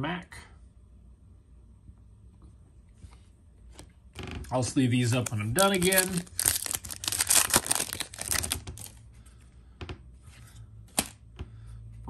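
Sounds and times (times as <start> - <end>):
foil wrapper crinkling and tearing: 5.1 - 9.0.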